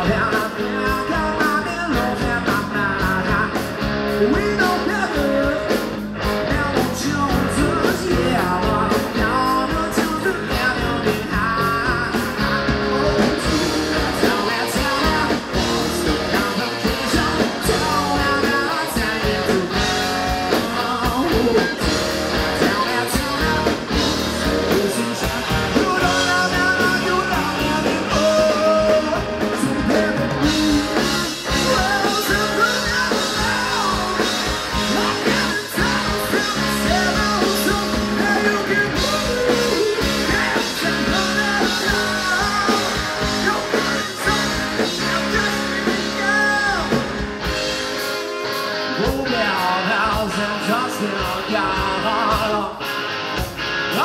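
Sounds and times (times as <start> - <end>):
bass guitar: 0.0 - 54.0
drum kit: 0.0 - 54.0
electric guitars: 0.0 - 54.0.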